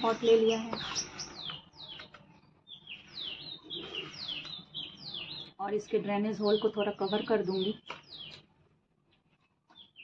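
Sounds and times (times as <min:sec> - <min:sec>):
bird chirping: 0:00.0 - 0:10.0.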